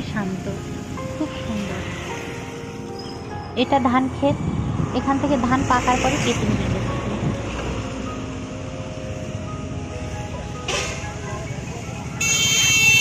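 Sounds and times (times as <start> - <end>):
motor vehicle rumbling: 0.0 - 13.0.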